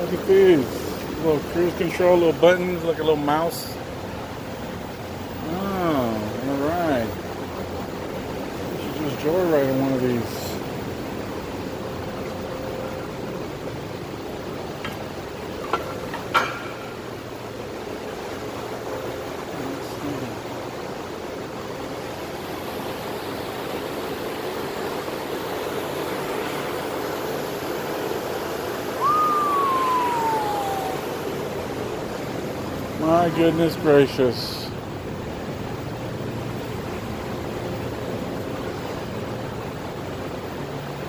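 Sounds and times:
tone sliding downward: 0:29.0 - 0:31.3.

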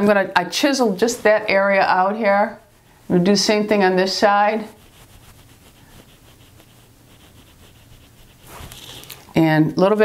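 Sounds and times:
makeup brush rubbing skin: 0:01.0 - 0:09.3.

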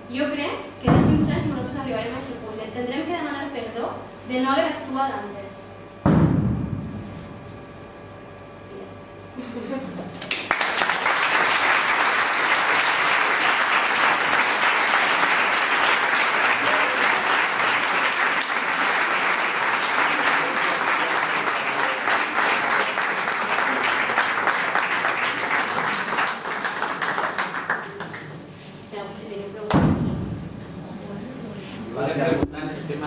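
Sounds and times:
crowd applauding: 0:10.2 - 0:28.4.

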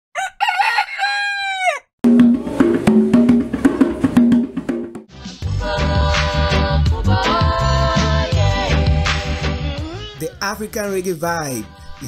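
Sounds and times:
rooster crowing: 0:00.1 - 0:01.9.

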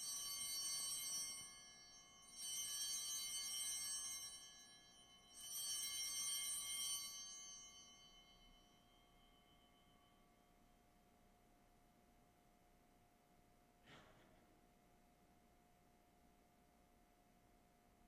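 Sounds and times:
altar bells ringing: 0:00.0 - 0:10.7.

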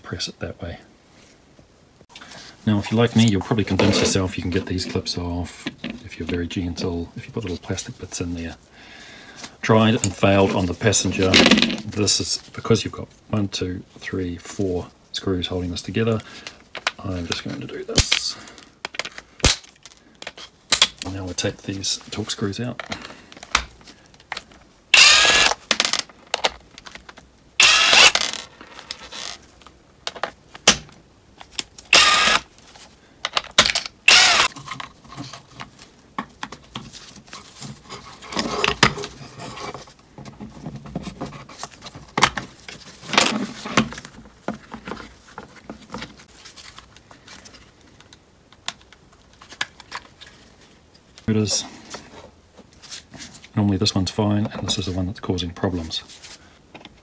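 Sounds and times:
cordless driver whirring: 0:25.0 - 0:25.6, 0:27.6 - 0:28.4, 0:31.9 - 0:32.4, 0:34.1 - 0:34.5.

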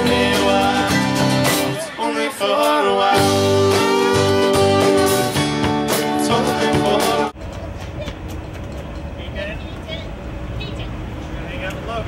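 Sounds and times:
distant voices: 0:07.1 - 0:12.0.

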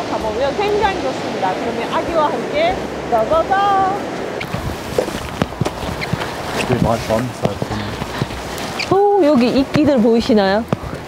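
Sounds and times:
outdoor background noise: 0:00.0 - 0:11.0
footsteps on gravel: 0:03.3 - 0:10.4.

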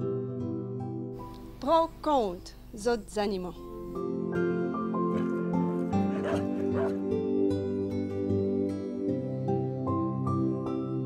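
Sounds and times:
soft background music: 0:00.0 - 0:11.0
dog barking: 0:05.1 - 0:07.1.

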